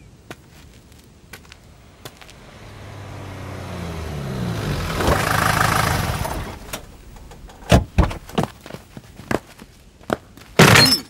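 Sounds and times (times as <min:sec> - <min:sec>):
vehicle engine accelerating: 0:01.7 - 0:07.6
sharp thuds: 0:04.8 - 0:08.7.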